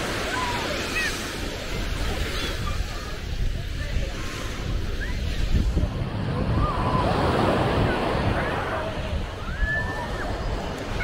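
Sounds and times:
small waves breaking on sand: 0.0s - 11.0s
wind on microphone: 0.0s - 11.0s.

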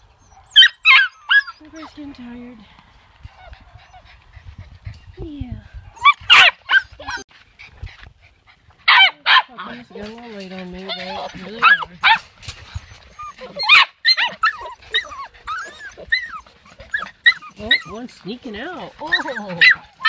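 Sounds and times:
puppies whining and yelping: 0.0s - 2.4s, 3.2s - 5.2s, 5.9s - 9.1s, 10.4s - 20.0s.

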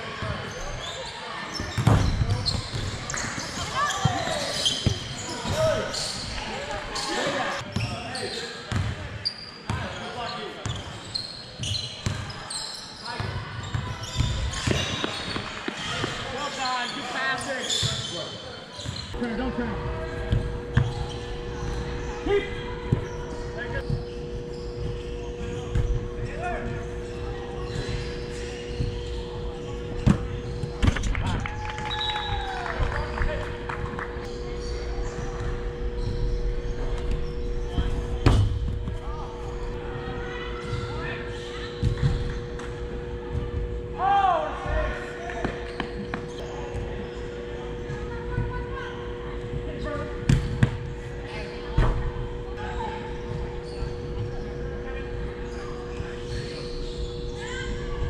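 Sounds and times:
soccer ball thuds in hall: 1.6s - 3.1s, 27.8s - 31.4s, 35.4s - 39.2s, 50.2s - 52.2s.

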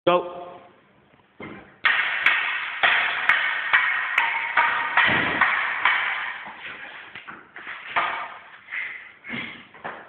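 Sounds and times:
wooden sticks clacking: 1.8s - 9.0s.

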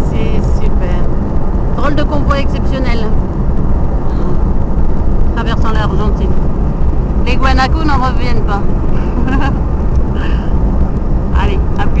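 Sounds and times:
voice: 0.0s - 1.1s, 1.8s - 3.2s, 4.1s - 4.5s, 5.4s - 6.4s, 7.3s - 9.6s, 11.4s - 12.0s
road and wind noise in car: 0.0s - 12.0s.

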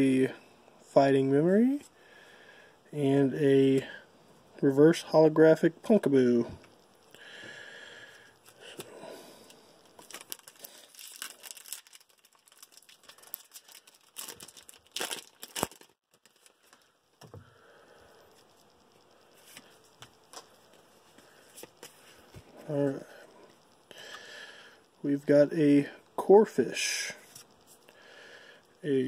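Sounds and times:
plastic wrapper crinkling and tearing: 9.8s - 16.9s
sharp crackles of cards pulled out: 9.9s - 16.8s.

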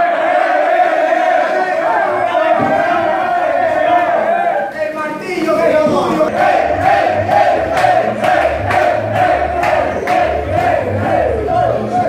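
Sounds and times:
young men chanting in unison: 6.2s - 12.0s.

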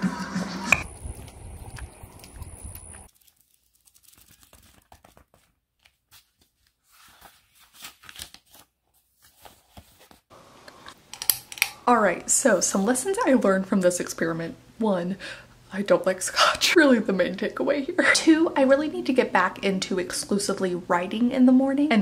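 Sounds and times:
low wind-like microphone rumble: 0.8s - 3.1s
paperback pages rustling: 0.8s - 10.3s
woman speaking: 11.8s - 22.0s.

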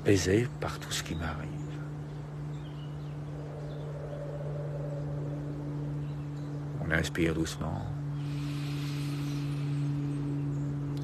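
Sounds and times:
steady low two-tone hum: 0.0s - 11.0s.

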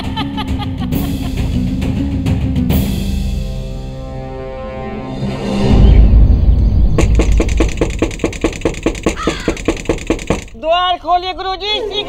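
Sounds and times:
deep boom: 5.6s - 8.2s
crows cawing: 9.1s - 9.8s.

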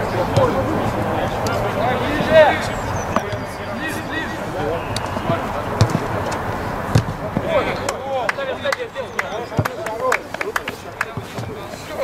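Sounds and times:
distant shouts of players: 0.0s - 12.0s
ball being kicked: 0.3s - 0.6s, 3.1s - 3.6s, 4.9s - 7.6s.

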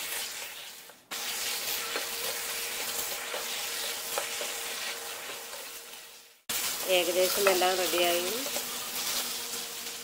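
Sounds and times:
meat sizzling in a pan: 0.0s - 10.0s
spatula knocking and scraping pan: 1.5s - 5.8s, 7.2s - 9.3s.

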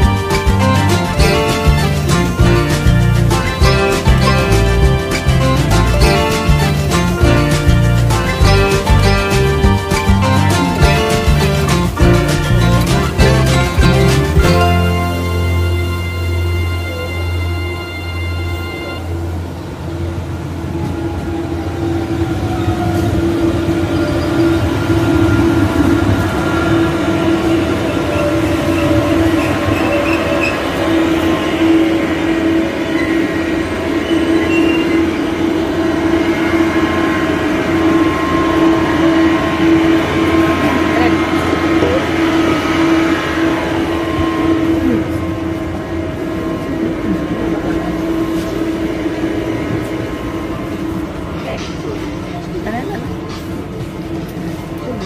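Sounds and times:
electric train whine and hum: 0.0s - 55.0s.

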